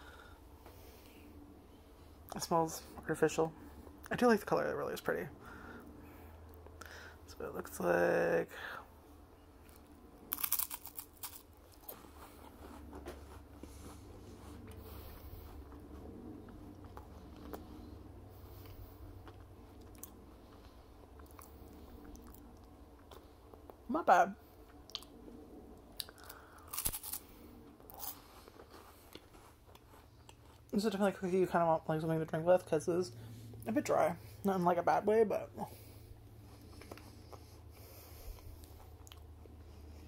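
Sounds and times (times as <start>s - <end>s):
wafer cookie crunching: 9.6s - 18.0s, 25.8s - 32.4s.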